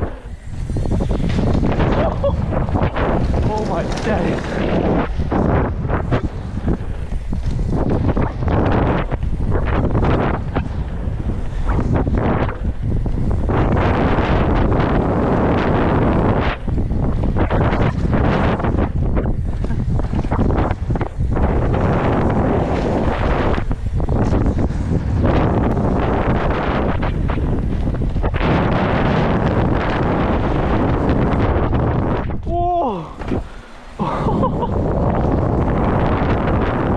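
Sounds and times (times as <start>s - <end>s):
bike knocks and rattles: 0.0s - 33.6s
bike tyres on gravel trail: 0.0s - 36.9s
wind buffeting microphone: 0.0s - 36.9s.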